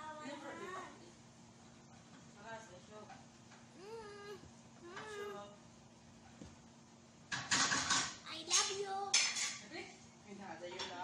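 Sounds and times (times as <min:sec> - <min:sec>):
dishes and pots clattering: 0:07.3 - 0:09.6, 0:10.7 - 0:11.0
child's high voice: 0:08.3 - 0:09.2.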